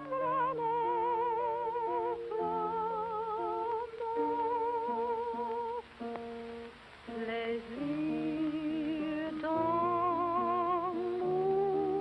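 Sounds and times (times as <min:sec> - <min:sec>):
woman singing with vibrato: 0:00.0 - 0:05.9, 0:07.1 - 0:12.0
soft piano accompaniment: 0:00.0 - 0:12.0.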